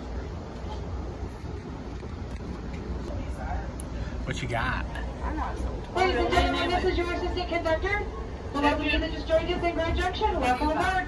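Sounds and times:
train car rumble: 0:00.0 - 0:11.0.

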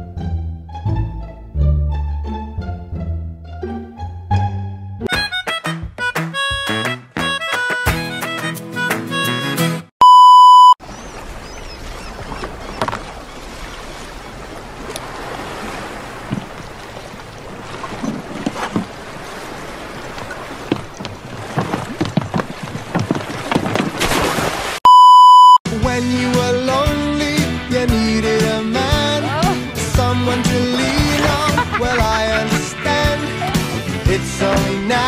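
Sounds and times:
test-tone beep: 0:10.0 - 0:10.8, 0:24.9 - 0:25.6
sea and wind noise: 0:10.8 - 0:24.8.

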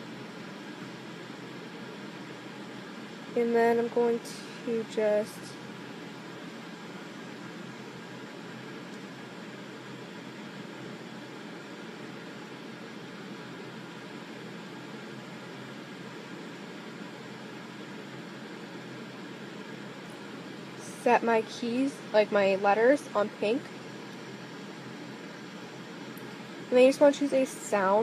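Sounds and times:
faint hum: 0:00.0 - 0:28.0.

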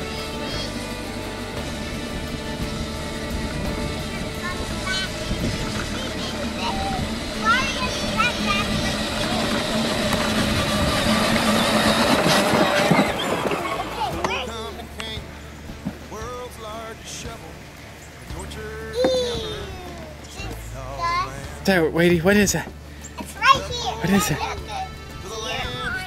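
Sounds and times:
electric toy vehicle motor whine: 0:00.0 - 0:14.7
song playing: 0:00.0 - 0:26.0.

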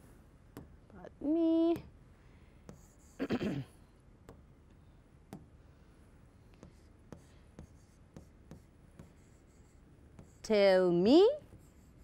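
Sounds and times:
pen tapping on whiteboard screen: 0:05.3 - 0:05.5, 0:06.6 - 0:10.4.

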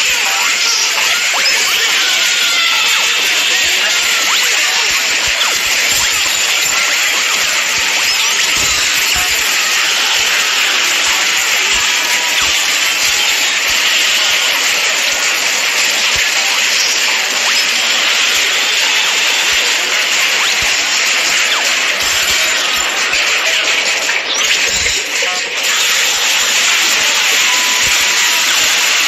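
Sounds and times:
cartoon brawl sound effects: 0:00.0 - 0:29.0.

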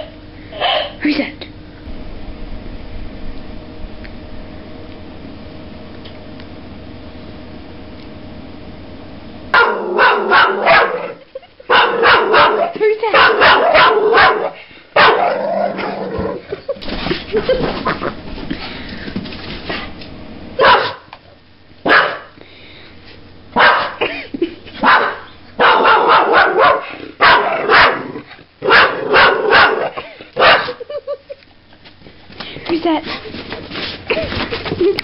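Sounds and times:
dog barking sharply: 0:09.5 - 0:11.1, 0:11.7 - 0:15.4, 0:20.6 - 0:21.1, 0:21.8 - 0:22.3, 0:23.6 - 0:24.0, 0:24.8 - 0:28.0, 0:28.6 - 0:30.8.

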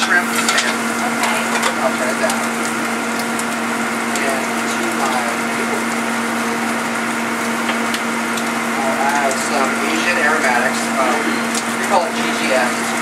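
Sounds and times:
oil crackling and spitting in a wok: 0:00.0 - 0:13.0.

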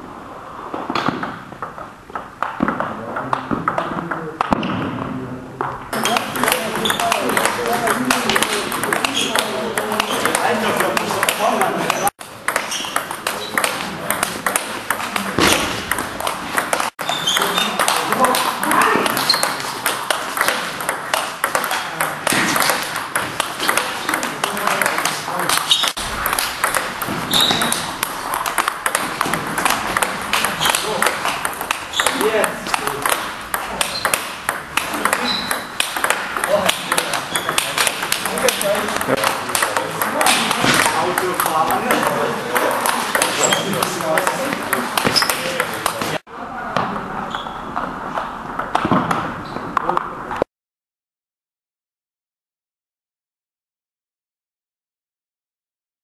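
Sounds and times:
table tennis ball clicks: 0:05.9 - 0:44.4.

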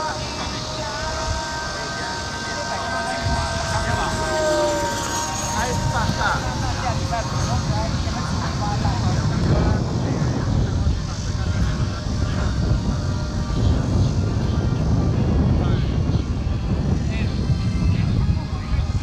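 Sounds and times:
model jet engine rumbling: 0:00.0 - 0:19.0
voices in background: 0:00.0 - 0:19.0.

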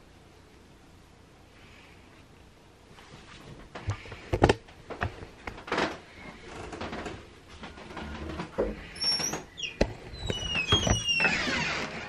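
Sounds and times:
door scraping: 0:05.7 - 0:12.0
door hinge squeaking: 0:08.6 - 0:12.0.

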